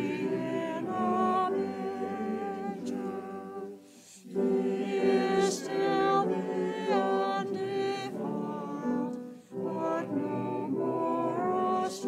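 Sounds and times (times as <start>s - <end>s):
small choir singing: 0.0s - 12.0s.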